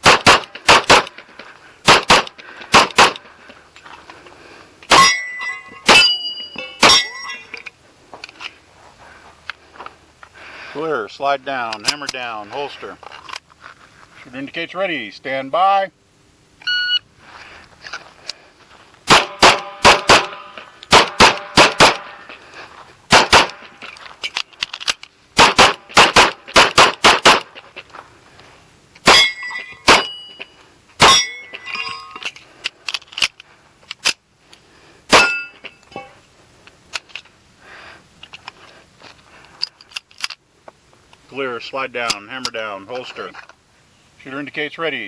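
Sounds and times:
pistol shots: 0.0 - 1.1, 1.8 - 3.2, 19.1 - 22.2, 23.1 - 23.6, 25.4 - 27.5, 29.0 - 30.2
shot timer beep: 16.6 - 17.0.

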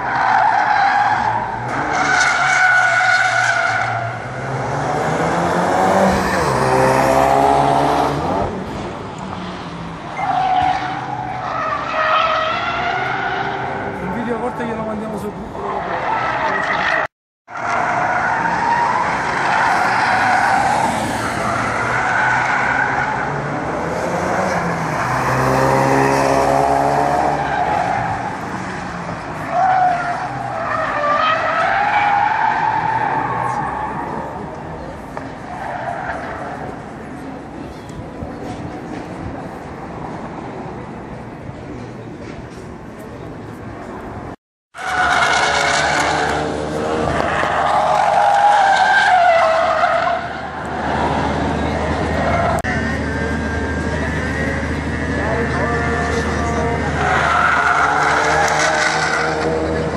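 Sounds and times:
car engines revving hard: 0.0 - 41.2, 44.2 - 59.9
tyres squealing: 52.1 - 59.9.

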